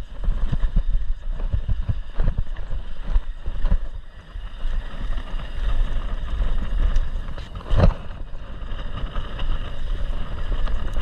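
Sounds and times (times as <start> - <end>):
tyres rolling on dirt: 0.0 - 11.0
wind buffeting microphone: 0.0 - 11.0.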